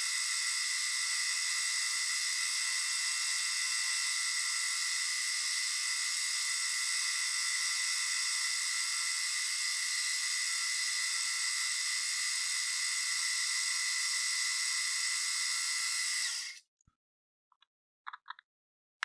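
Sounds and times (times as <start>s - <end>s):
milling machine high-pitched whir: 0.0s - 16.6s.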